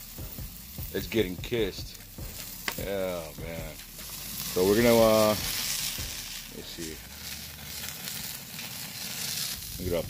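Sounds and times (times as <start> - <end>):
fat hissing in flames: 0.0 - 10.0
meat sizzling on a grill: 0.0 - 10.0.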